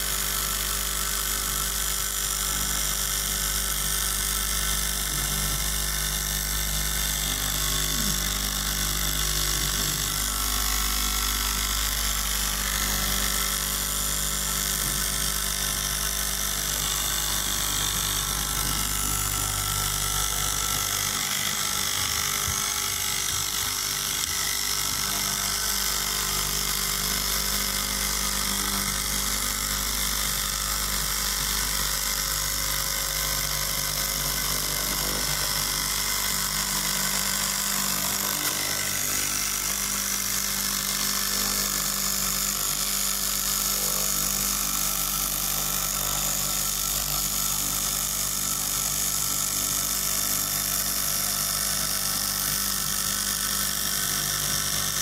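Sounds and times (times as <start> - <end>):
cloth cutting machine running: 0.0 - 55.0.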